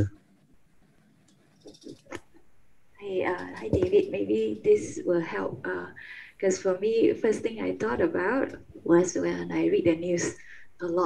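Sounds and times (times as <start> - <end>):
microphone handling knocks and rubs: 3.2 - 5.8.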